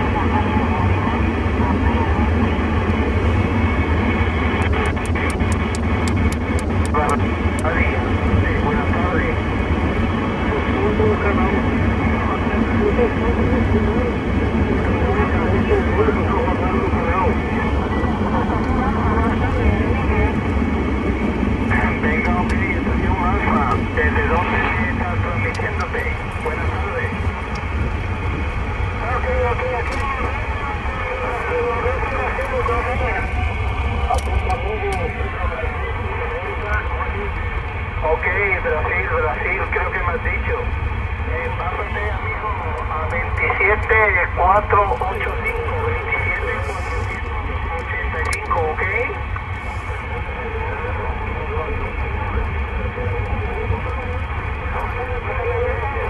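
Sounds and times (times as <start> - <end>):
faint garbled radio voices: 0.0 - 56.0
radio band noise hiss: 0.0 - 56.0.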